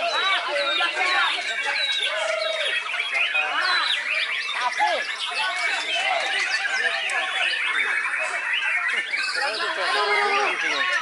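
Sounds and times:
songbirds singing in chorus: 0.0 - 11.0.

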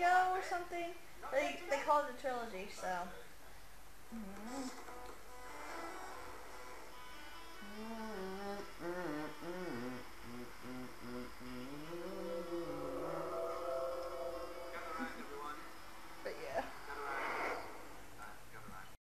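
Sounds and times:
person humming: 4.1 - 5.1, 7.5 - 15.2.

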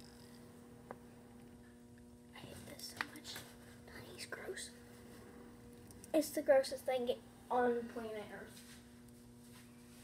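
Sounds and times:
low electrical hum: 0.0 - 10.0
person whispering: 2.3 - 4.8.

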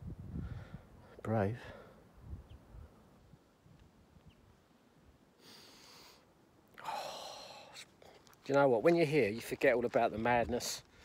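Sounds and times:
wind rumble on microphone: 0.0 - 1.1, 2.2 - 4.6
man breathing close to microphone: 0.3 - 2.1.

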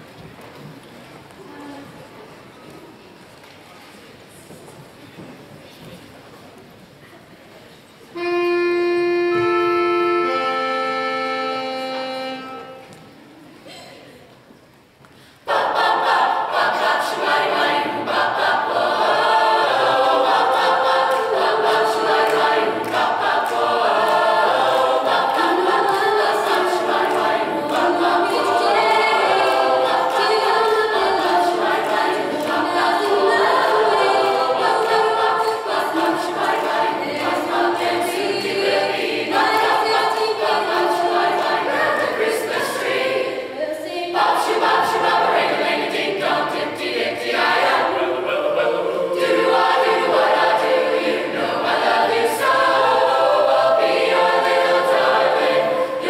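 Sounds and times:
choir singing in harmony: 8.2 - 13.2, 15.4 - 56.0.

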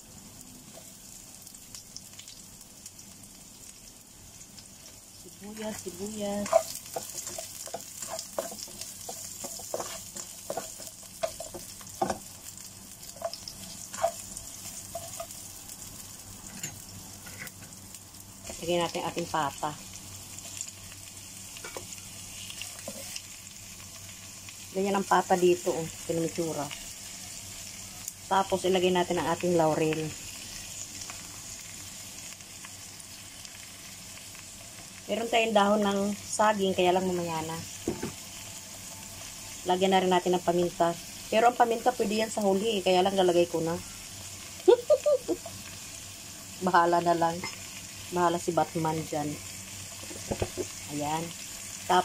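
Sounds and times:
onions sizzling in oil: 0.0 - 52.0
spatula scraping a pan: 6.4 - 11.7, 22.4 - 23.2.

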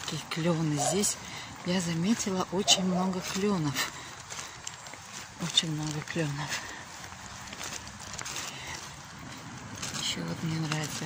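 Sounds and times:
faint footsteps: 0.0 - 11.0
outdoor street background noise: 0.0 - 11.0.

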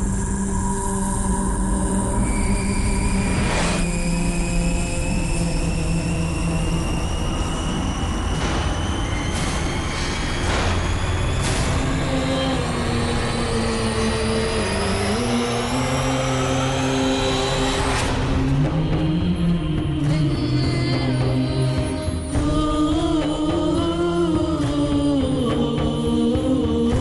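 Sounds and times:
low droning notes: 0.0 - 27.0.

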